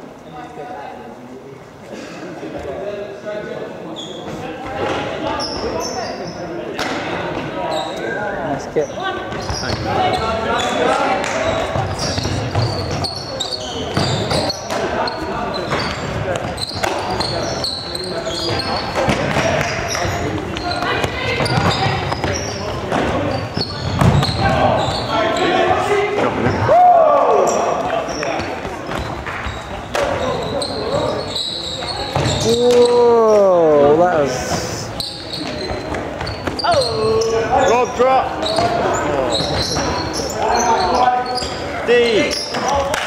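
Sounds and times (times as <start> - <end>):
shoe squeaks: 3.9 - 6.6, 7.5 - 26.7, 27.4 - 33.6, 34.4 - 43.0
footfalls on wooden court: 18.4 - 24.9, 32.0 - 32.9.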